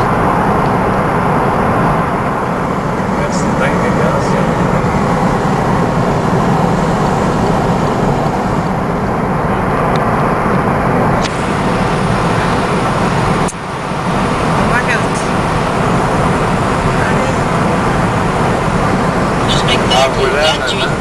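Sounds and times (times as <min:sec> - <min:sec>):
car road and engine noise: 0:00.0 - 0:21.0.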